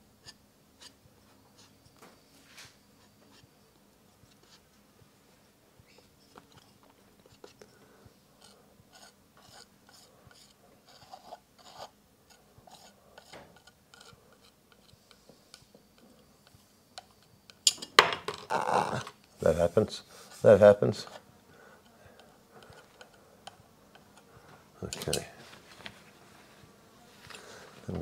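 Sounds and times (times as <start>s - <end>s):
palette knife scraping paint: 3.0s - 3.5s, 4.3s - 4.6s, 8.4s - 17.3s, 22.1s - 24.2s.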